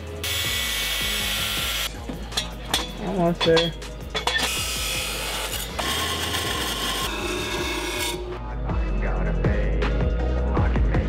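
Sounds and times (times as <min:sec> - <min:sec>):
chop saw grinding through metal: 0:02.4 - 0:08.4.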